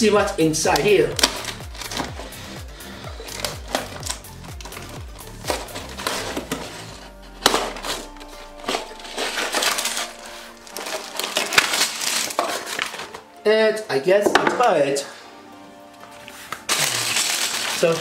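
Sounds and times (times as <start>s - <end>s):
background music: 0.0s - 18.0s
plastic bags of pieces rattling: 8.7s - 13.2s, 16.7s - 18.0s.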